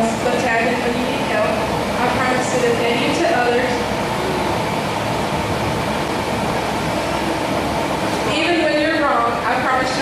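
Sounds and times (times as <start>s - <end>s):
large ventilation fans running: 0.0s - 10.0s.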